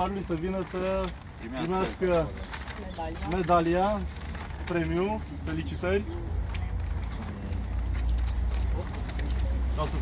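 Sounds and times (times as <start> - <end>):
faint voices murmuring: 0.0 - 10.0.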